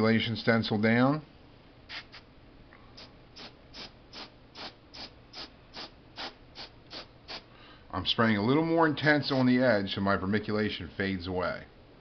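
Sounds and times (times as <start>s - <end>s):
airbrush spraying short puffs: 1.9s - 2.3s, 3.0s - 7.5s.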